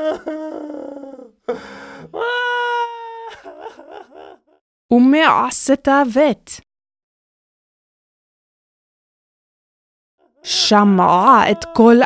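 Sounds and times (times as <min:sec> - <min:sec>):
person sobbing and wailing: 0:00.0 - 0:04.6, 0:10.2 - 0:12.0.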